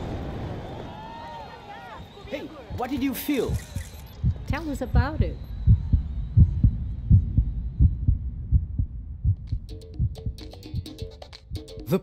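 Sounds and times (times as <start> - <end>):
heartbeat thumps: 2.7 - 12.0
light percussive music: 9.3 - 12.0.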